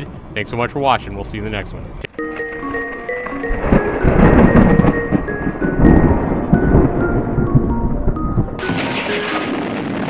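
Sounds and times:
melody of short held notes: 0:02.2 - 0:09.8
rolling thunder: 0:03.4 - 0:10.0.

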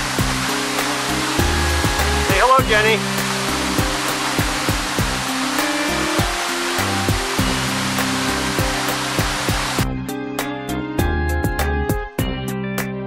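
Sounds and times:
waterfall roaring: 0:00.0 - 0:09.8
plucked background music: 0:00.0 - 0:13.0.

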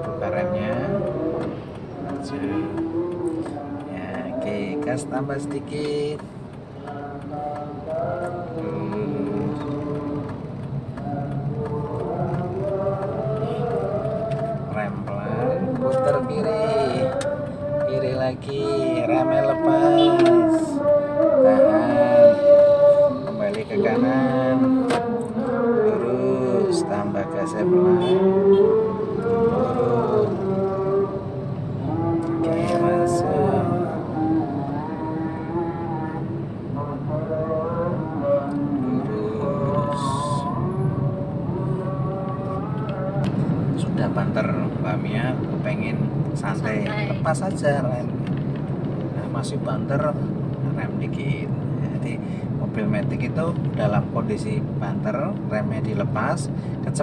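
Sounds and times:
person singing long held notes: 0:06.8 - 0:43.8.

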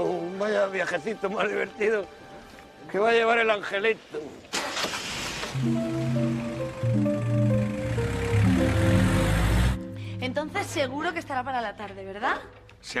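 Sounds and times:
van starting and driving off: 0:04.6 - 0:09.9
music cue of held notes: 0:05.5 - 0:11.0.

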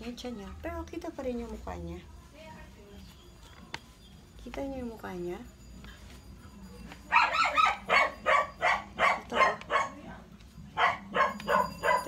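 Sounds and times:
dog barking rapidly: 0:07.1 - 0:10.1, 0:10.8 - 0:12.0.

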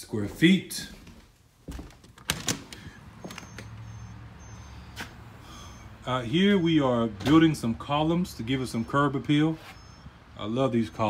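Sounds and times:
storm door clicks and knocks: 0:01.8 - 0:03.4.

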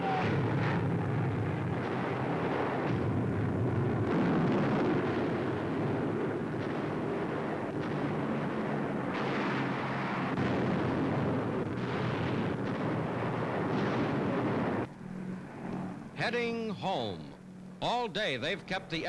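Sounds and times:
rumbling roar of explosions: 0:00.0 - 0:17.4
steady low drone: 0:00.0 - 0:19.0.

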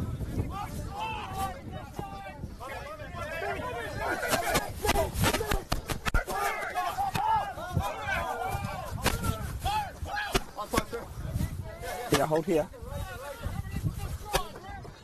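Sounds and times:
players shouting: 0:00.5 - 0:11.1
sharp thuds of a tackle: 0:09.0 - 0:09.5, 0:10.3 - 0:11.0, 0:14.2 - 0:14.6.

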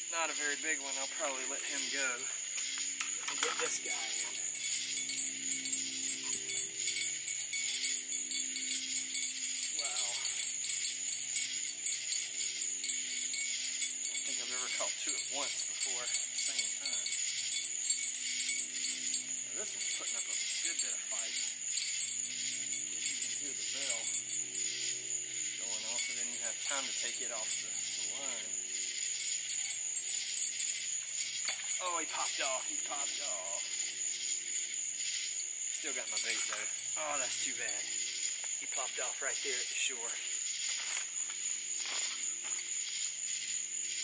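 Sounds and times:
night insects chorus: 0:00.0 - 0:44.0
small bell jingling: 0:00.4 - 0:43.8.

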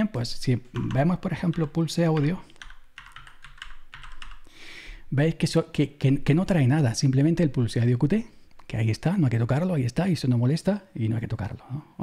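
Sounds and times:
typing on computer keyboard: 0:00.8 - 0:04.5.

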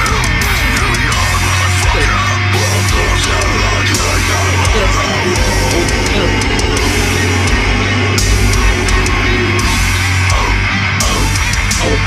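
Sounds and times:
heavy metal song: 0:00.0 - 0:12.0
cymbal crashes: 0:04.2 - 0:11.2.

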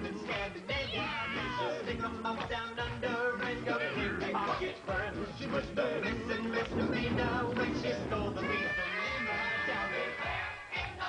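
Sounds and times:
a cappella group singing: 0:00.0 - 0:11.0.

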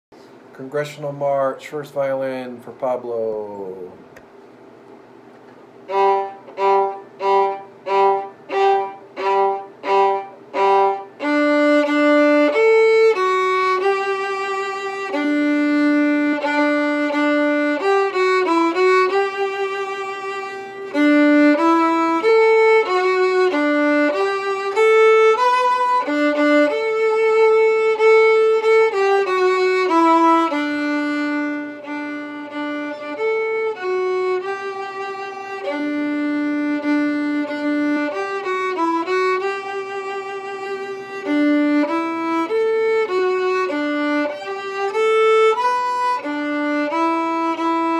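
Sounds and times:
solo violin playing a march: 0:05.8 - 0:47.9.

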